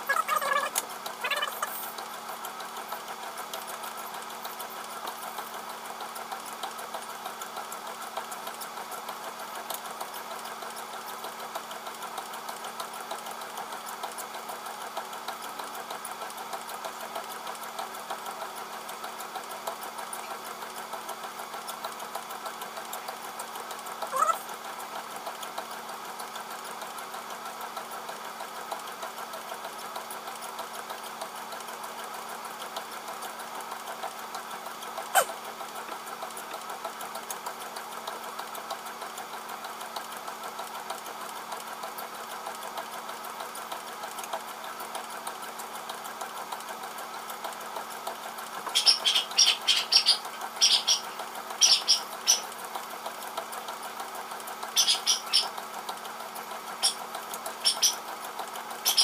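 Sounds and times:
treadmill motor hum: 0:00.0 - 0:59.0.

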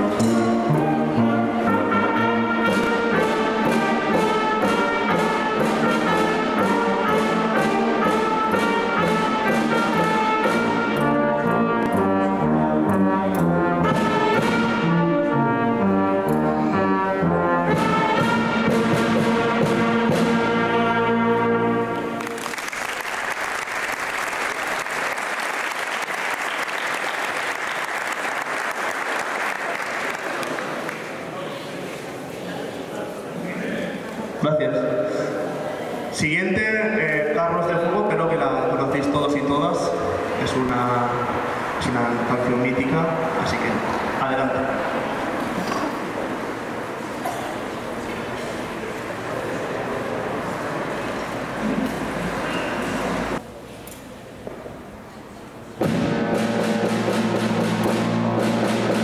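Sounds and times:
wind band playing: 0:00.0 - 0:30.9, 0:38.1 - 0:47.1, 0:48.7 - 0:53.4, 0:55.8 - 0:59.0
audience applause: 0:22.2 - 0:31.5.

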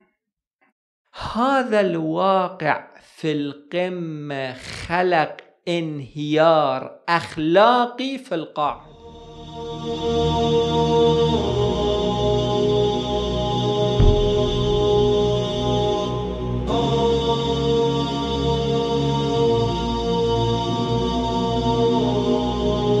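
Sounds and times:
long chanted tones: 0:08.8 - 0:21.2
deep boom: 0:13.9 - 0:16.7.

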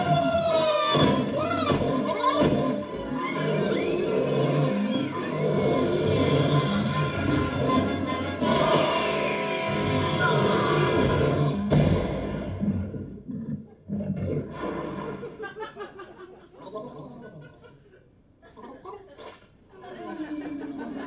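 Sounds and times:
thud and crash sound effects: 0:11.0 - 0:12.7
heavy hit: 0:11.2 - 0:12.6.

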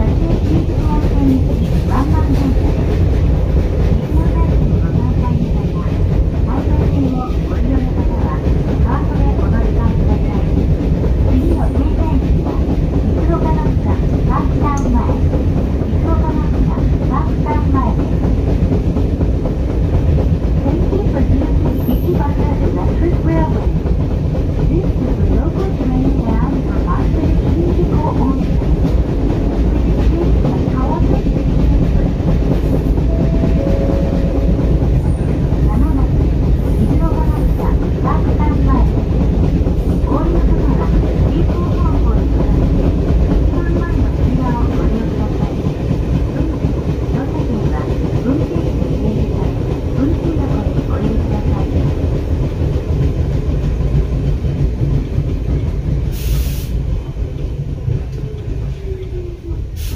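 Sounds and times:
train wheels rumbling on rails: 0:00.0 - 0:59.9.

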